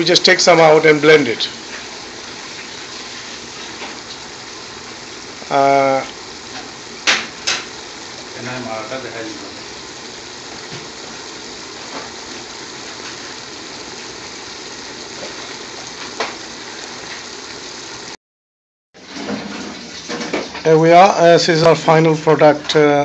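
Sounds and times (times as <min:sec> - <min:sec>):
peppers sizzling in oil: 0:00.0 - 0:18.2.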